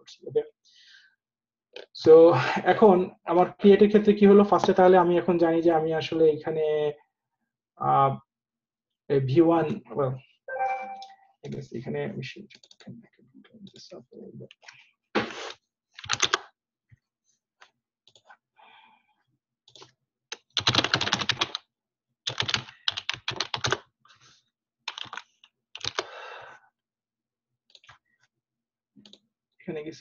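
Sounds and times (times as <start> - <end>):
keyboard typing: 16.0 - 16.4, 19.7 - 21.6, 22.3 - 23.8, 24.9 - 26.1.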